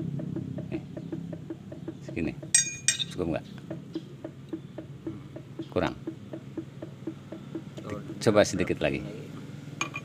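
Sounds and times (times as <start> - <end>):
hammer striking steel bar: 2.5 - 3.2.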